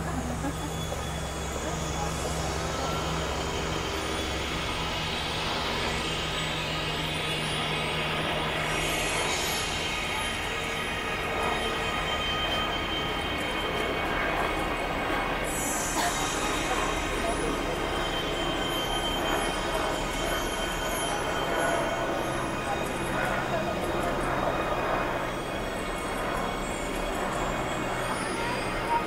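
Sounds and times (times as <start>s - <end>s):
constant low hum: 0.0s - 29.0s.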